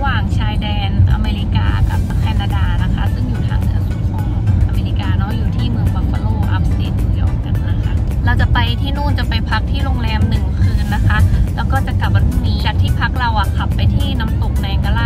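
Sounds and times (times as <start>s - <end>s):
background music: 0.0s - 15.0s
car cabin road rumble: 0.0s - 15.0s.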